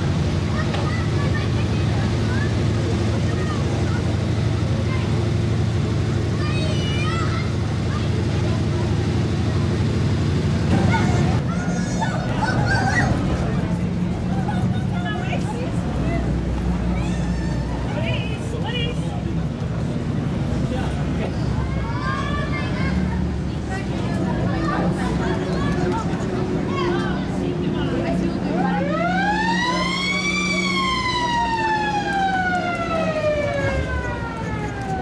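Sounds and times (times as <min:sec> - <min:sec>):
crowd chatter: 0:00.0 - 0:35.0.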